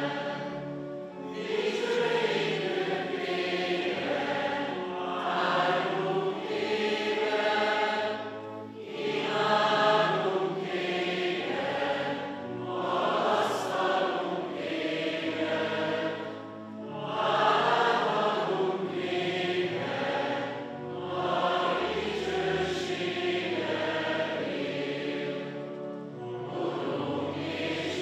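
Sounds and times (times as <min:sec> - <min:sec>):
congregation chanting in unison: 0:00.0 - 0:28.0.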